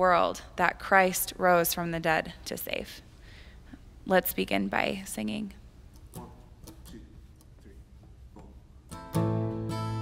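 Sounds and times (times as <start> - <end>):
acoustic guitar strumming chords: 8.9 - 10.0.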